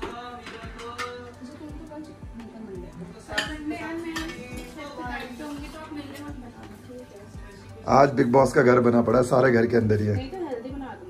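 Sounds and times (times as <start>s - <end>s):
plates clinking: 0.0s - 1.4s, 3.3s - 4.8s
background music with beat: 0.0s - 11.0s.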